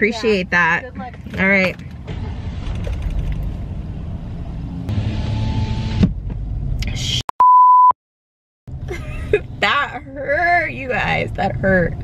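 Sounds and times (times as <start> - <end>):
car engine and road rumble: 0.0 - 7.2, 8.7 - 12.0
censor bleep: 7.4 - 8.0.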